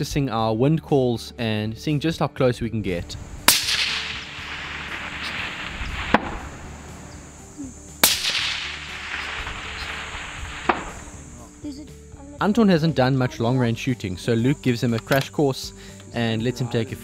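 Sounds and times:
sharp distant crack: 3.4 - 11.5
suppressed rifle shot echoing: 3.4 - 11.5.

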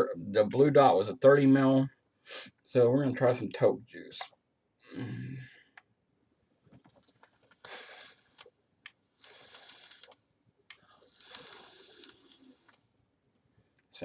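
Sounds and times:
air hissing through vape: 7.5 - 8.4, 9.2 - 10.2, 10.9 - 12.7
breathy exhale: 10.8 - 12.5.

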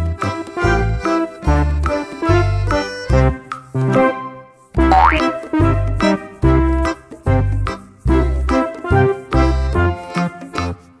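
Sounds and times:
upbeat children's music: 0.0 - 11.0
rising pitch slide: 4.9 - 5.3.

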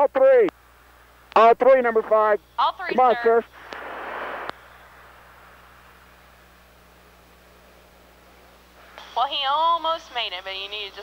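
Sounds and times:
faint steady hiss: 0.0 - 11.0
low hum: 0.6 - 10.9.

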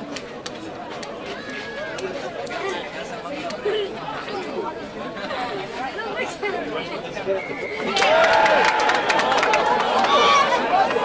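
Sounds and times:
crowd chatter and calls: 0.0 - 11.0.

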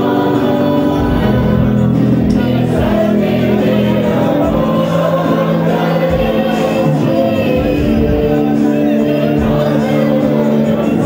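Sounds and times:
congregation singing: 0.0 - 11.0
musical backing: 0.0 - 11.0.

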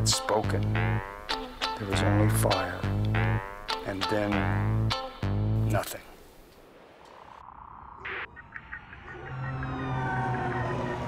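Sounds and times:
whistling tones falling in pitch: 7.9 - 11.0.

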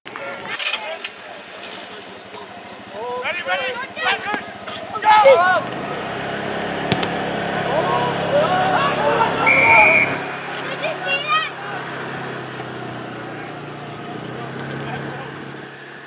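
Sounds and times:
players and spectators shouting: 2.5 - 16.0
referee's whistle blast: 9.4 - 10.6.

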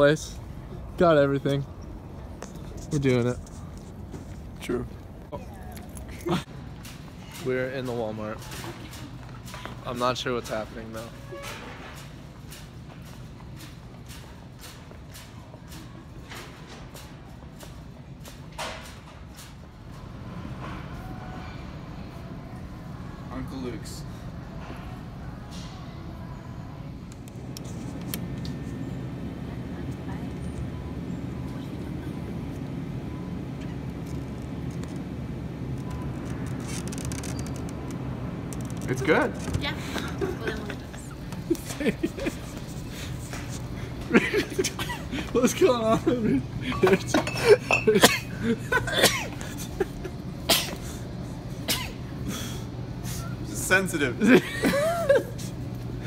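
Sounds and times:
steady low hum: 0.0 - 56.0
store background rumble: 0.0 - 56.0.

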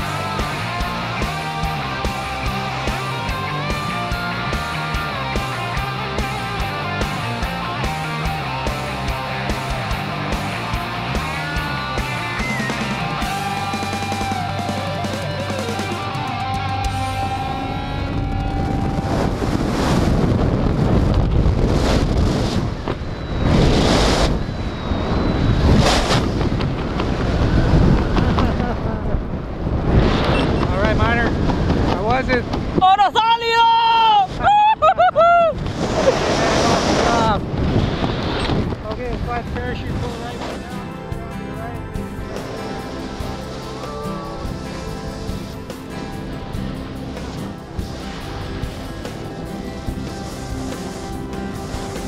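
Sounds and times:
wind rushing over microphone: 0.0 - 52.0.

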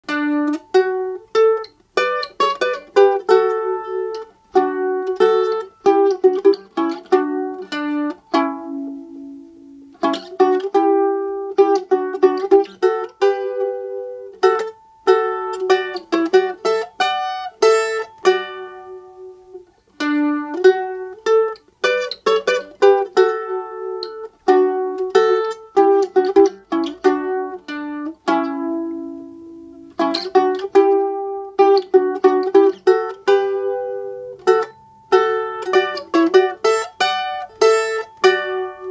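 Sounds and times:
mandolin picking slow melody: 0.0 - 38.9.

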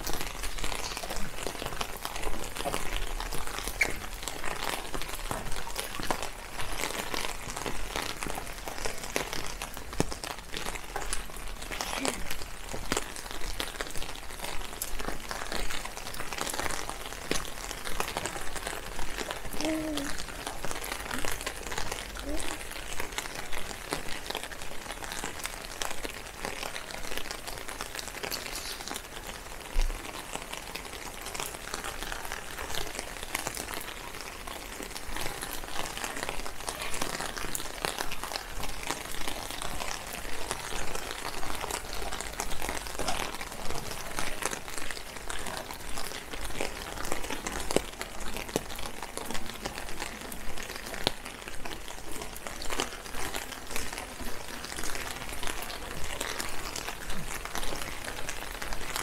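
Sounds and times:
rain patter: 0.0 - 59.0
raindrop ticks close by: 0.0 - 59.0.

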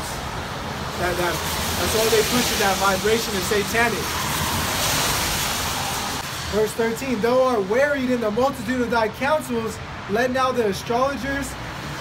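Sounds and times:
car tyres hissing on wet road: 0.0 - 7.2.

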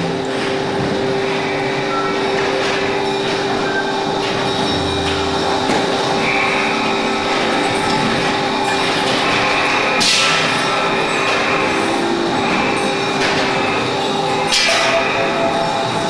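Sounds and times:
continuous hissing noise drone: 0.0 - 16.0.

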